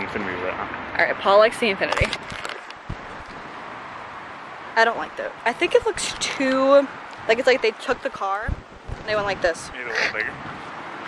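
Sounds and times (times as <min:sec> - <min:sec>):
outdoor background hiss: 0:00.0 - 0:11.0
low thump: 0:02.9 - 0:03.5, 0:08.4 - 0:09.5.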